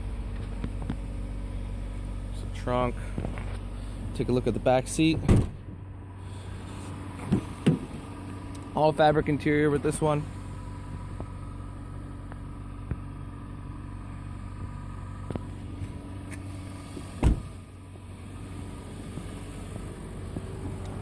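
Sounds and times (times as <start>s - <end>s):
car engine idling: 0.0s - 21.0s
loud thump: 5.2s - 5.8s, 17.2s - 17.6s.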